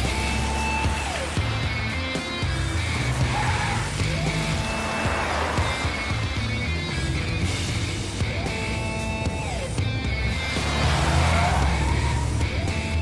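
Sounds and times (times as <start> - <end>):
car engine driving fast: 0.0 - 13.0
dramatic background music: 0.0 - 13.0.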